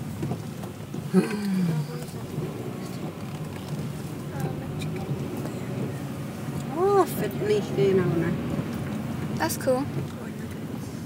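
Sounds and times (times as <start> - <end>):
car cabin hum: 0.0 - 11.0.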